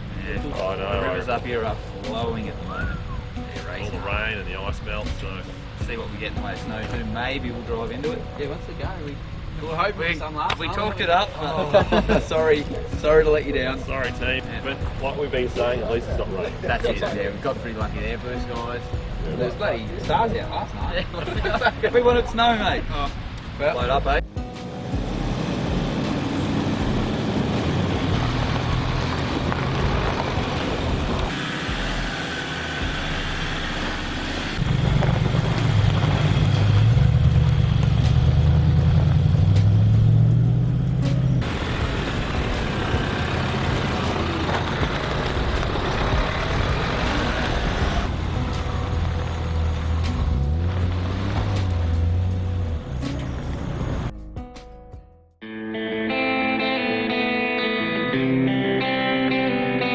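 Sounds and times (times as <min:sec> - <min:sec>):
off-road vehicle engines: 0:00.0 - 0:54.2
tyres on gravel: 0:25.2 - 0:39.9, 0:41.4 - 0:54.0.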